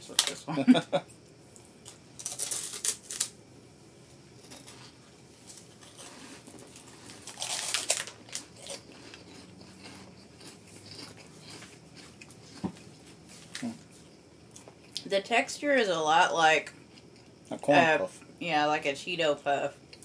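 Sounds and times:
plastic wrapper crinkling: 2.2s - 3.3s, 7.1s - 8.4s
crunching bites of snack: 5.7s - 12.8s.

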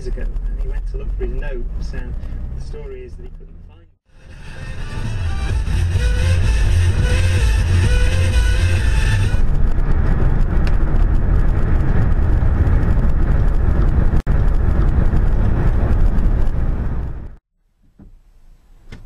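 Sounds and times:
car road and engine rumble: 0.0s - 19.0s
music playing: 4.1s - 9.4s.

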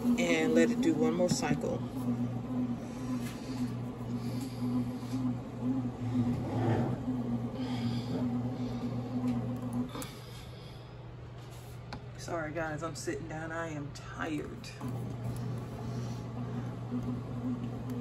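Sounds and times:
bread machine motor humming: 0.0s - 11.9s, 14.2s - 18.0s.

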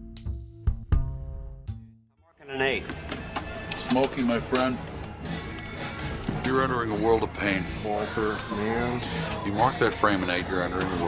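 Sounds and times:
background music: 0.0s - 11.0s
bowling alley noise: 2.5s - 11.0s.

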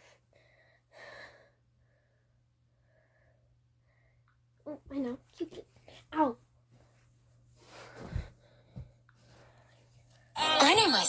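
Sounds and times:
person breathing close up: 0.0s - 4.2s.

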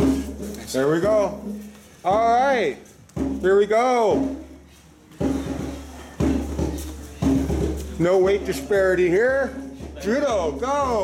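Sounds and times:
percussive strikes: 0.0s - 11.0s.

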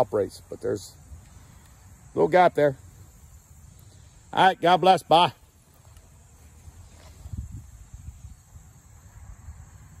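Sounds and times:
wind rumble on microphone: 6.8s - 10.0s.

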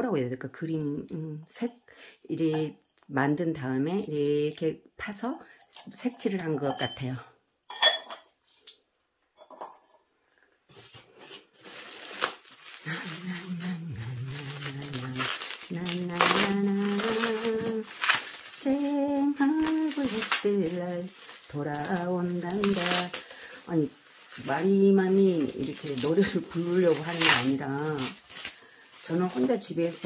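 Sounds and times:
ceramic pot clinking down: 7.7s - 8.4s
bubble wrap crackling: 11.1s - 30.0s
woman humming: 12.8s - 18.0s, 18.6s - 21.1s.

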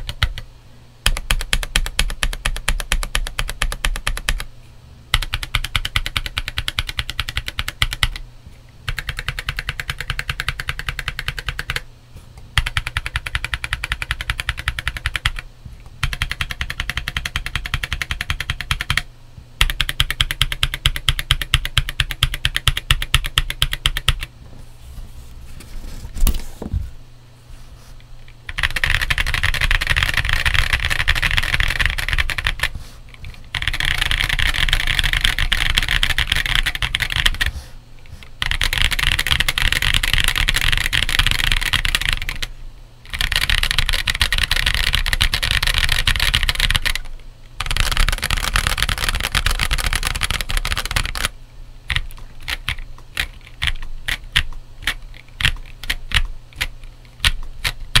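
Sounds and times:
fast typing on keyboard: 0.0s - 0.4s, 1.0s - 4.5s, 5.1s - 8.2s, 8.9s - 11.8s, 12.6s - 24.3s, 28.5s - 37.5s, 38.4s - 42.5s, 43.1s - 51.3s, 51.9s - 58.0s.

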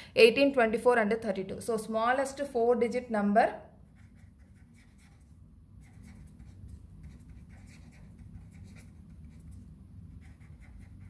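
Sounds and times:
marker pen scratching on paper: 3.8s - 11.0s.

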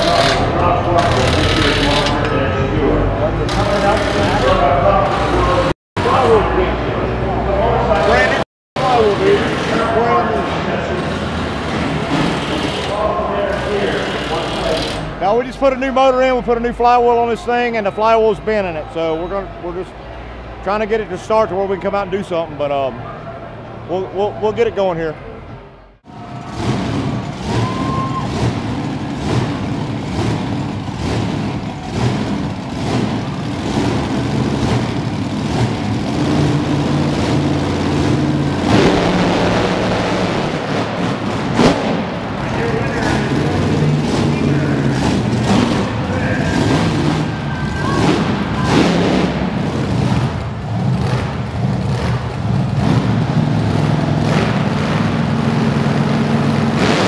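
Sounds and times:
monster truck engines revving: 0.0s - 57.0s.

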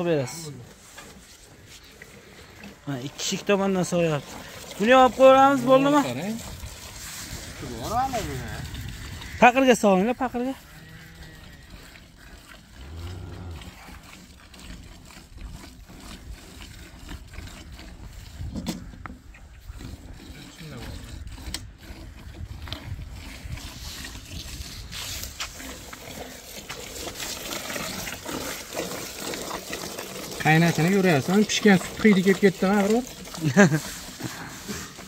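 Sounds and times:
milk squirting into a metal pail: 0.0s - 35.0s.

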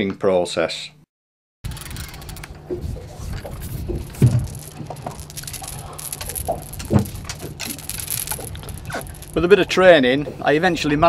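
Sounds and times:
fishing reel clicking: 1.7s - 2.6s.

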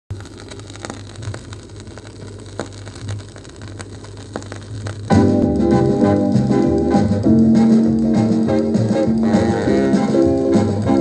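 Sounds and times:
vinyl clicks and pops: 0.1s - 11.0s
vinyl surface hiss: 0.1s - 11.0s.

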